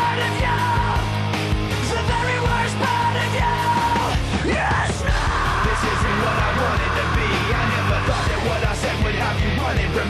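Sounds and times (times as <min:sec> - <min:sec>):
rock band playing: 0:00.0 - 0:10.0
person yelling: 0:01.8 - 0:08.6.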